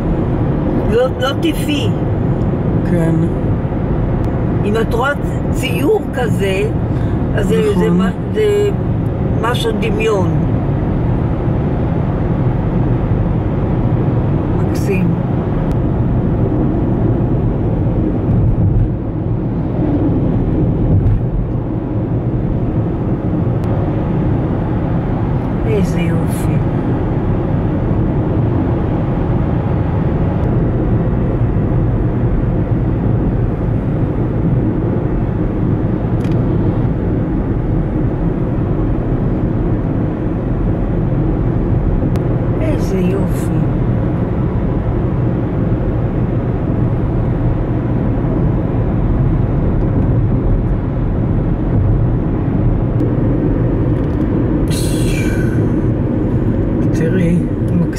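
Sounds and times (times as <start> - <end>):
car cruising on highway: 0.0 - 57.9.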